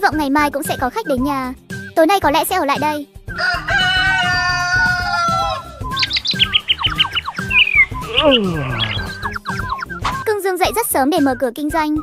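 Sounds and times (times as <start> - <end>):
light background music: 0.0 - 12.0
rooster crowing: 3.4 - 5.8
high bird chirps: 5.2 - 10.3.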